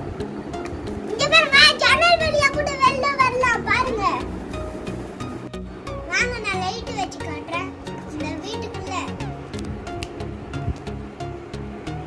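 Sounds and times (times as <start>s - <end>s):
background music: 0.0s - 12.0s
child calling out: 1.2s - 4.3s.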